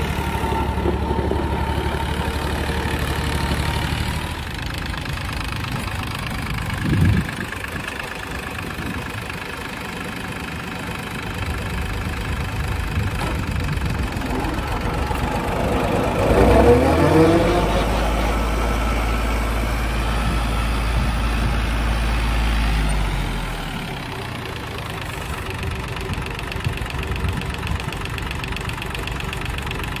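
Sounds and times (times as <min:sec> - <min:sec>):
diesel tractor engine idling and revving: 0:00.0 - 0:30.0.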